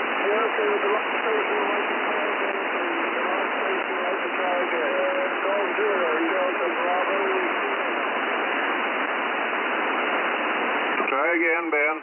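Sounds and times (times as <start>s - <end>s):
weak radio voice: 0.0s - 8.5s, 10.9s - 12.0s
radio static hiss: 0.0s - 12.0s.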